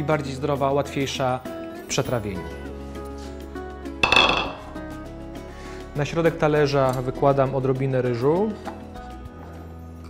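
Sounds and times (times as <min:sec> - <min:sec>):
background music: 0:00.0 - 0:10.0
kitchenware clink: 0:04.0 - 0:04.8.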